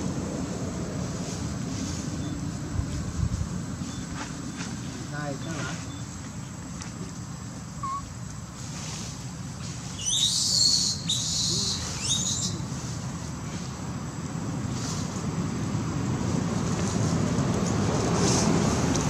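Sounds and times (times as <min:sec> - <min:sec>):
high-pitched squealing animal calls: 0:07.8 - 0:08.1.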